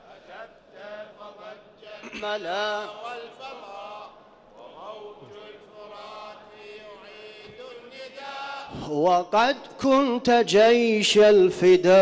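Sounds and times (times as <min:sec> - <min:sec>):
male chorus chanting: 0:00.0 - 0:12.0.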